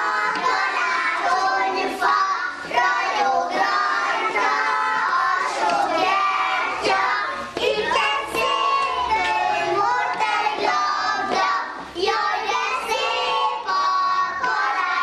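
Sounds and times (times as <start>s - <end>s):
children singing in unison: 0.0s - 15.0s.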